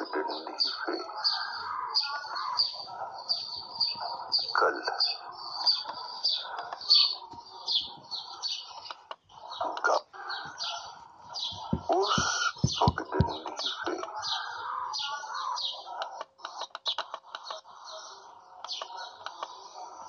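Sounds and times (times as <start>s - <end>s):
birds chirping: 0.0s - 20.0s
low thumps: 11.5s - 13.5s.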